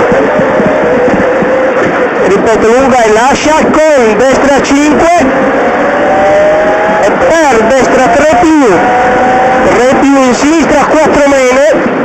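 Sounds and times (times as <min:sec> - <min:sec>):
rally car engine accelerating: 0:00.0 - 0:12.0.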